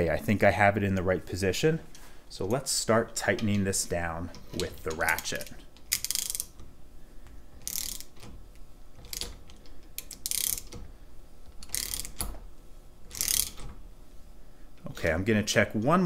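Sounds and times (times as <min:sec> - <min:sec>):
socket ratchet clicking: 0:04.4 - 0:06.7, 0:07.6 - 0:10.9, 0:11.5 - 0:12.4, 0:13.1 - 0:13.8.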